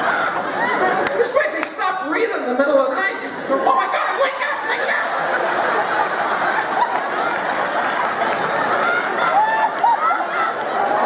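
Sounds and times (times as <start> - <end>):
audience laughing: 0.0 - 11.0
audience clapping: 0.8 - 1.8, 6.0 - 11.0
higher laughing voices: 3.9 - 11.0.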